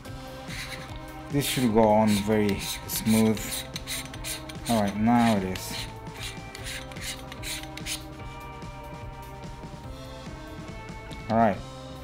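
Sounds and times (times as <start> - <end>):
background music: 0.0 - 12.0
filter ring scraping on thread: 0.4 - 8.1.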